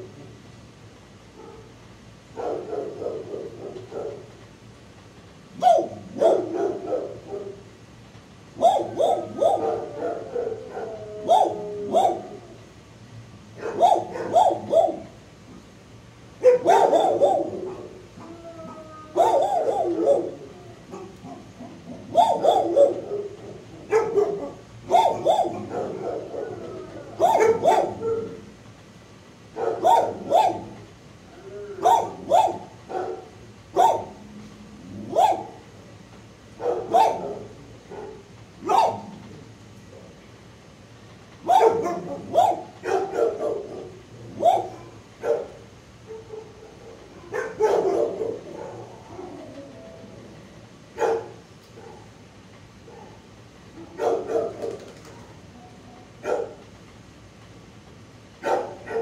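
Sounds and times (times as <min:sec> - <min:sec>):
dogs barking: 0:01.3 - 0:04.4, 0:05.5 - 0:07.7, 0:08.6 - 0:12.6, 0:13.5 - 0:15.2, 0:16.4 - 0:18.3, 0:19.1 - 0:28.5, 0:29.5 - 0:30.9, 0:31.8 - 0:34.2, 0:35.0 - 0:35.8, 0:36.5 - 0:39.3, 0:41.4 - 0:49.5, 0:50.9 - 0:55.4, 0:56.2 - 0:56.7, 0:58.4 - 0:59.0.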